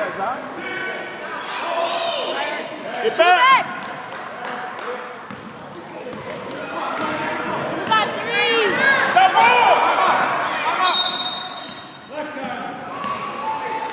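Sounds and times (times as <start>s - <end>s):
spectators' voices echoing: 0.0s - 13.9s
basketball bouncing: 5.3s - 7.2s
sneakers squeaking on hardwood: 11.0s - 12.1s.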